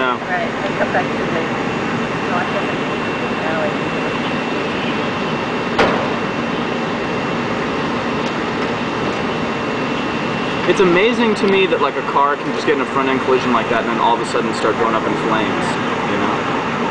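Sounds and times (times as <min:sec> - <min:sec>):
engine drone with hiss: 0:00.0 - 0:16.9.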